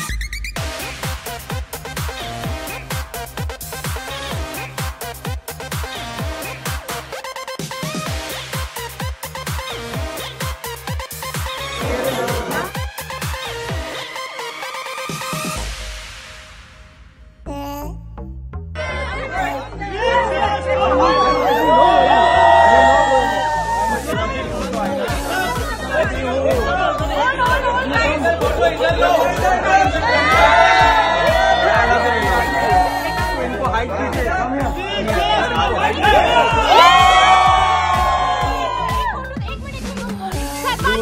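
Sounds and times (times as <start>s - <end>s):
dance music with bass line: 0.0s - 16.6s, 18.8s - 41.0s
many voices chattering: 11.6s - 12.8s, 18.8s - 22.4s, 23.2s - 36.7s
crowd cheering: 18.8s - 25.8s, 26.5s - 34.2s, 34.8s - 39.6s.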